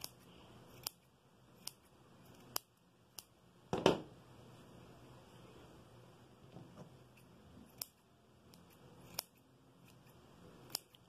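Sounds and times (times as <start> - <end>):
scissors snipping yarn: 0.0 - 3.4, 6.9 - 11.0.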